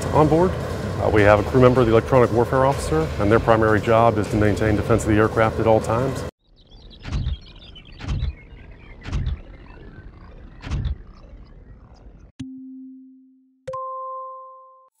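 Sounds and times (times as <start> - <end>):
steady noise: 0.0 - 12.3
electronic tones: 6.5 - 12.8
heavy thumps: 7.0 - 7.4, 8.0 - 8.4, 9.0 - 9.5, 10.6 - 11.1.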